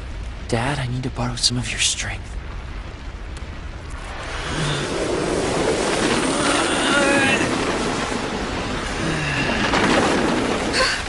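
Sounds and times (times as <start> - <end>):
loud steady rumbling rush: 0.0 - 11.0.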